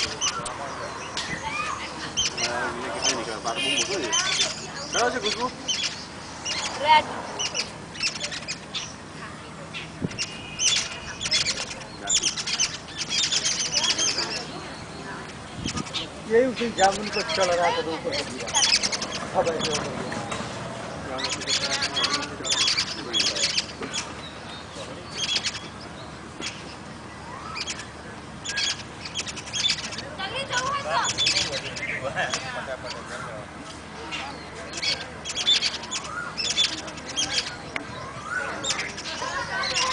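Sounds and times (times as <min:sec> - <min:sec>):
small birds chirping: 0:00.0 - 0:39.9.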